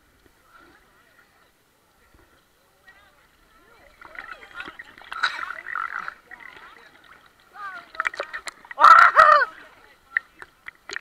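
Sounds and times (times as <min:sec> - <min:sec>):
people talking and calling out: 0:00.4 - 0:10.6
water lapping against camera: 0:03.4 - 0:11.0.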